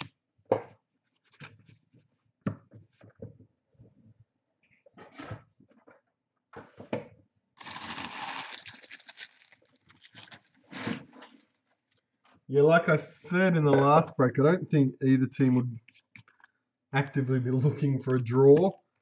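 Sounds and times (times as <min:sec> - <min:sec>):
cards and foil wrappers rustling: 0:07.6 - 0:12.0.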